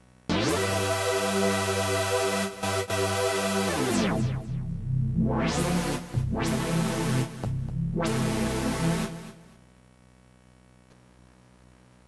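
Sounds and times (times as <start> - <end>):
synthesizer with filter sweeps: 0.3 - 9.6.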